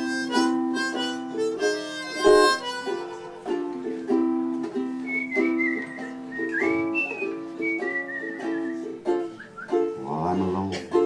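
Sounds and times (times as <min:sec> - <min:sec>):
whistled melody: 0:00.0 - 0:03.3, 0:04.9 - 0:10.0
ukulele strumming chords: 0:00.0 - 0:11.0.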